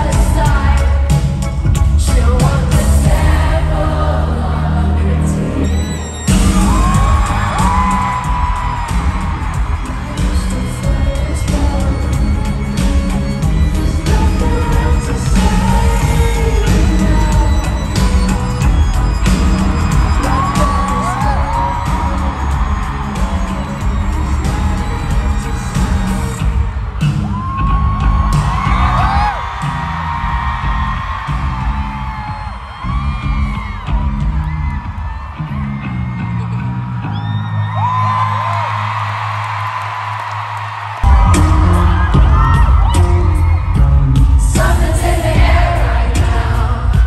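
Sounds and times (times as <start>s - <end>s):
live pop band music: 0.0s - 36.7s, 41.0s - 47.0s
crowd whooping and screaming: 2.8s - 47.0s.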